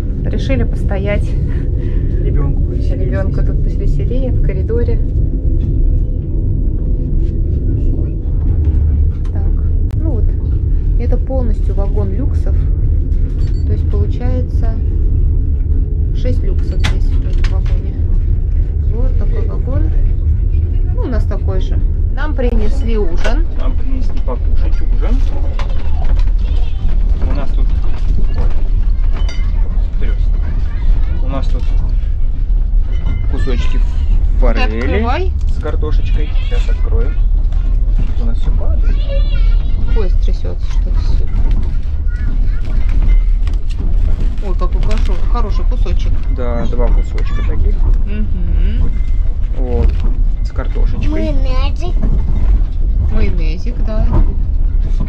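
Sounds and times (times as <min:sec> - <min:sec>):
train rumble inside carriage: 0:00.0 - 0:55.0.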